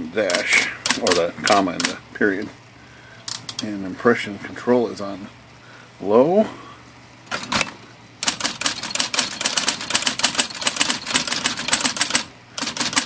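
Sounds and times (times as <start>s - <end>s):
faint motor hum: 0.0s - 13.0s
electric typewriter typing: 0.2s - 2.0s, 7.3s - 13.0s.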